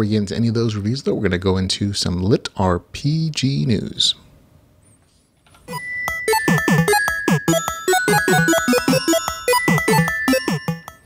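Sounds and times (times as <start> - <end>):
retro video game jingle: 5.7 - 11.0.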